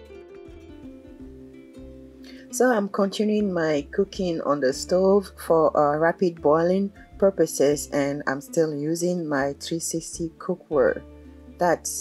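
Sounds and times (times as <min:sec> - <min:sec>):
plucked notes: 0:00.0 - 0:07.4.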